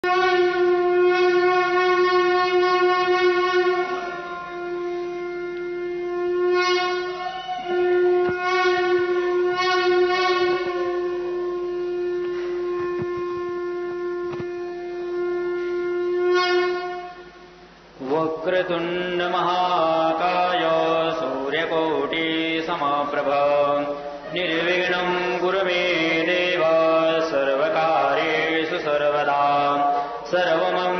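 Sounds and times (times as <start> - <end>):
conch shell blown: 0.0 - 18.1, 23.5 - 30.9
man chanting: 18.0 - 30.9.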